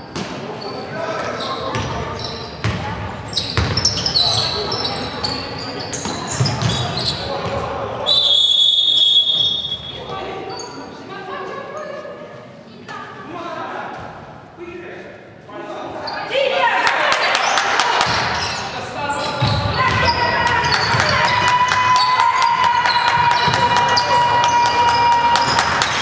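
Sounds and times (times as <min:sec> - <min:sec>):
sneakers squeaking: 0:00.0 - 0:11.1, 0:16.0 - 0:16.4, 0:17.3 - 0:26.0
shrill referee's whistle blast: 0:08.1 - 0:10.0
players calling out: 0:16.0 - 0:26.0.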